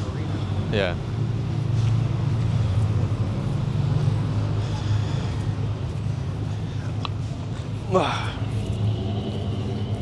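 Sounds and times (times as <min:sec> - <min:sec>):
street noise: 0:00.0 - 0:10.0
vehicle engine running: 0:00.0 - 0:10.0.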